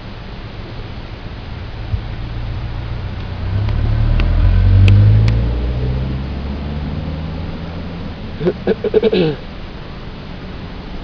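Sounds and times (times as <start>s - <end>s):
car passing: 0.8s - 9.4s.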